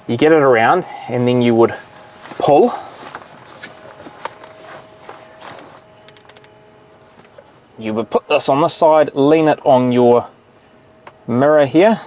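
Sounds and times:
sunshade frame clicks: 5.4s - 6.6s
small ticks: 6.0s - 6.6s.

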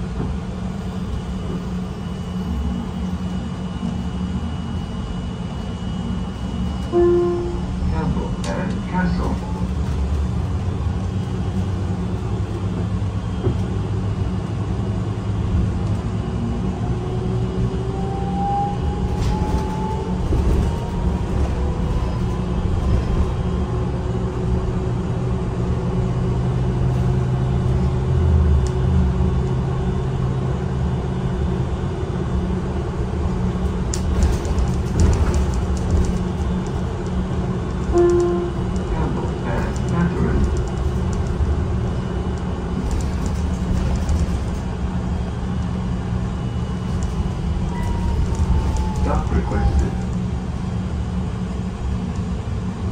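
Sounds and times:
bus engine and road rumble: 0.0s - 52.9s
bus whine rising in pitch: 0.5s - 8.4s, 9.6s - 34.5s, 35.1s - 39.5s, 40.5s - 52.8s.

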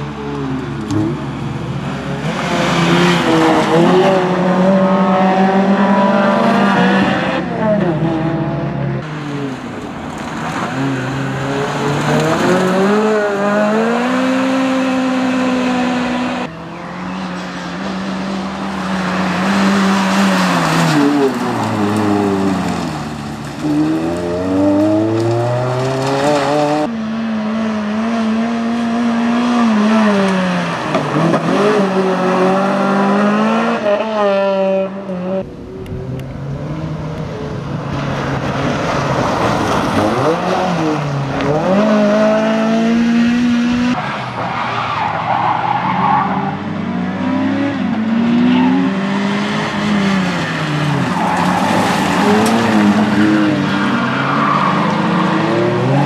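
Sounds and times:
car engine revving: 0.0s - 44.1s.

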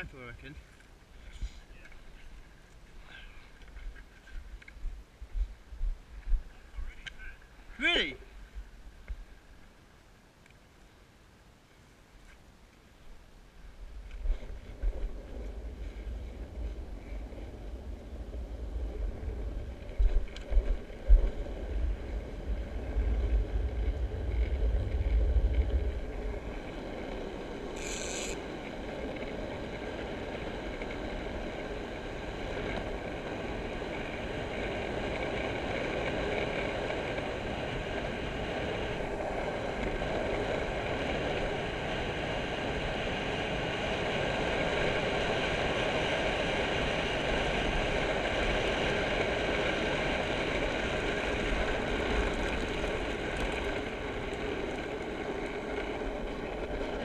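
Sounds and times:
small wheels rolling on tarmac: 12.2s - 57.0s.

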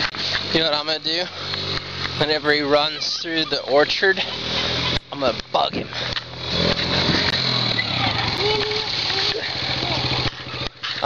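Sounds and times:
small engine humming: 0.0s - 11.0s.

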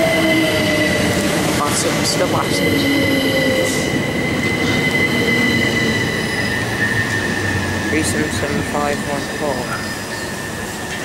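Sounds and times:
electric train rolling past: 0.0s - 11.0s.

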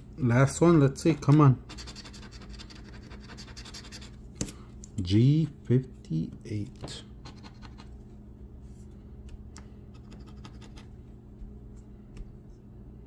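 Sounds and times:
steady low hum: 0.0s - 13.0s
coin scraping scratch card: 1.7s - 4.2s, 7.2s - 7.9s, 10.0s - 10.9s.

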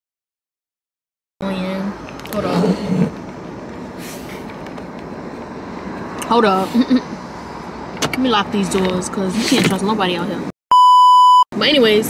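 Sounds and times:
street traffic: 1.4s - 12.0s.

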